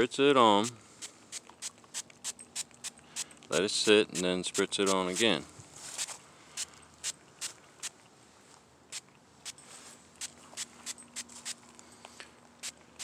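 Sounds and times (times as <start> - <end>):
spray bottle spritzing: 0.6 - 7.9, 8.9 - 9.6, 10.2 - 11.6.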